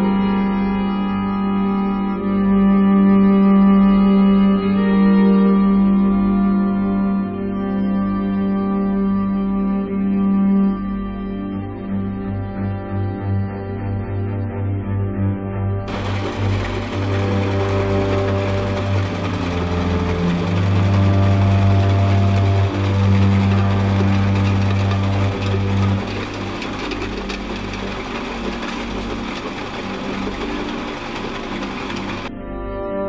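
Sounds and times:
background music low notes: 0.0s - 33.0s
crusher machine clattering: 15.9s - 32.3s.

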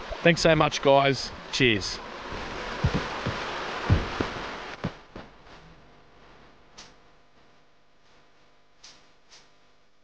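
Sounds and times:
creek water rushing over rapids: 0.0s - 5.0s.

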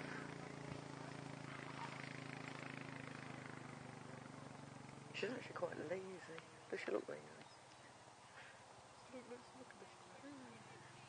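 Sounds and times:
vehicle engine idling: 0.0s - 11.0s.

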